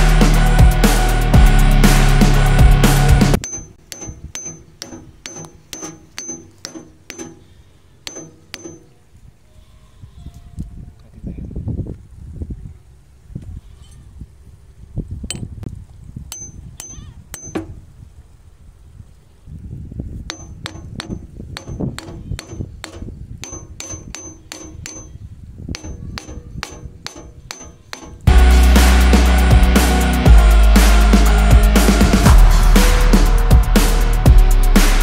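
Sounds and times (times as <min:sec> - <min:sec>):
hammer tapping metal bearing: 0:03.4 - 0:09.0, 0:16.3 - 0:17.7, 0:20.3 - 0:28.3.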